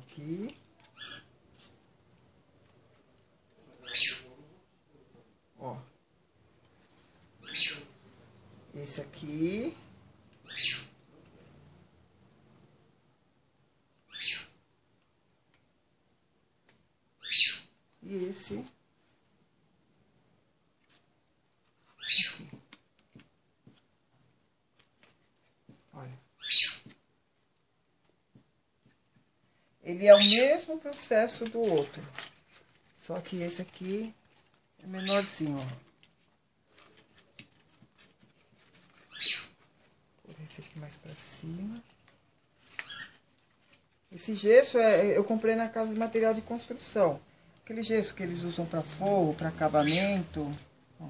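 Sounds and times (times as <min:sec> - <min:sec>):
bird squawking: 0:03.8 - 0:04.3, 0:07.4 - 0:07.9, 0:10.4 - 0:11.0, 0:14.1 - 0:14.6, 0:17.2 - 0:17.7, 0:22.0 - 0:22.5, 0:26.4 - 0:26.9, 0:39.1 - 0:39.6, 0:42.8 - 0:43.2
squeak-like rub: 0:21.8 - 0:22.6, 0:38.0 - 0:39.7, 0:42.6 - 0:43.3
craft flowers rustling: 0:30.0 - 0:51.0.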